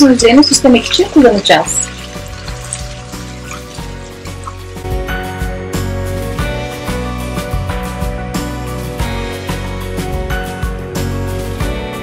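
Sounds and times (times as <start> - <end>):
butter sizzling in a pan: 0.0 - 5.4
background music: 0.0 - 12.0.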